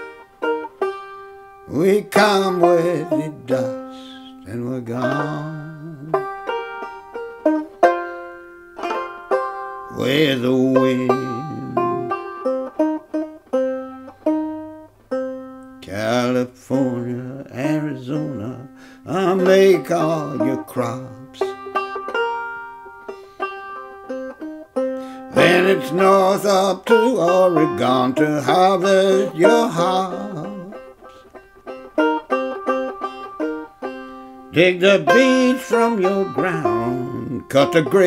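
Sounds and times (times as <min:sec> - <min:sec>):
banjo plucked notes: 0:00.0 - 0:38.0
person singing: 0:01.7 - 0:06.4, 0:09.9 - 0:12.4, 0:15.8 - 0:21.7, 0:25.2 - 0:31.1, 0:34.5 - 0:38.0.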